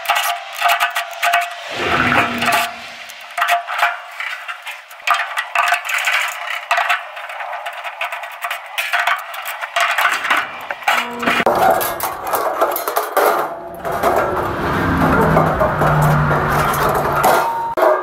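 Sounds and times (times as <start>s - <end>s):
metal clatter: 0.0s - 18.0s
metal clinks and scrapes: 0.0s - 18.0s.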